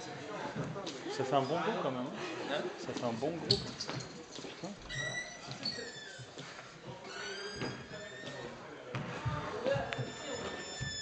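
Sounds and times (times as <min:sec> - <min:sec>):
high squeaks: 0:04.9 - 0:06.4, 0:07.0 - 0:08.6, 0:10.0 - 0:11.0.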